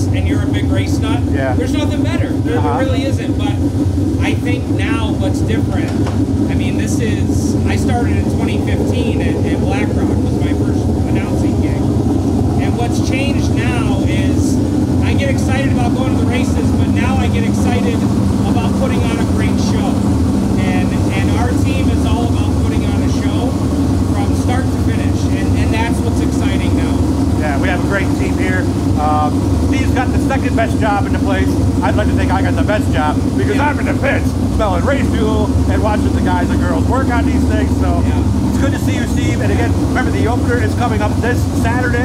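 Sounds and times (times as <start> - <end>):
low engine drone: 0.0 - 42.0
man talking: 0.0 - 42.0.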